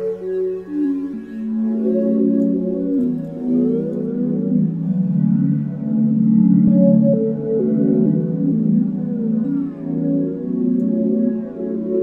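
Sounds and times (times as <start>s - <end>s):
mellow synthesizer chords: 0.0s - 12.0s.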